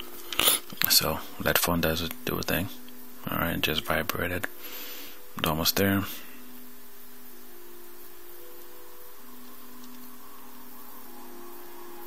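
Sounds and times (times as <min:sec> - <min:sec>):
faint humming tones: 0:00.0 - 0:12.0
steady hiss: 0:00.0 - 0:12.0.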